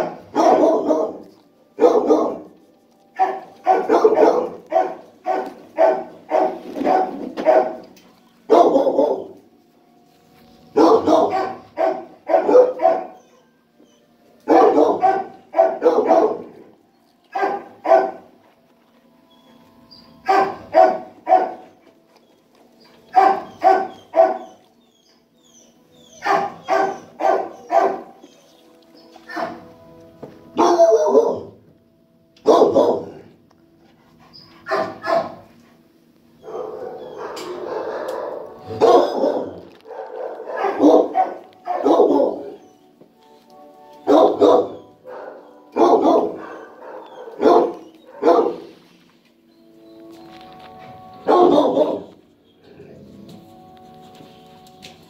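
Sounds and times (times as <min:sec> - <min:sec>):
dog barking: 0:00.0 - 0:02.5, 0:03.2 - 0:07.8, 0:08.5 - 0:09.4, 0:10.8 - 0:13.4, 0:14.5 - 0:16.7, 0:17.3 - 0:18.3, 0:20.2 - 0:21.6, 0:23.1 - 0:24.6, 0:26.2 - 0:28.2, 0:29.3 - 0:29.6, 0:30.6 - 0:31.6, 0:32.4 - 0:33.3, 0:34.6 - 0:35.5, 0:36.4 - 0:42.6, 0:44.0 - 0:48.7, 0:51.2 - 0:52.2.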